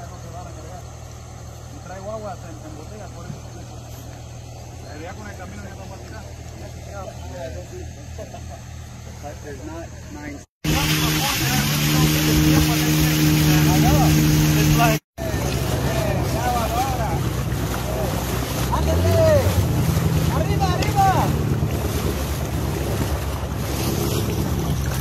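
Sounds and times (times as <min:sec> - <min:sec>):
water splashing against hull: 0:00.0 - 0:09.5, 0:10.6 - 0:25.0
outboard motor running: 0:00.0 - 0:25.0.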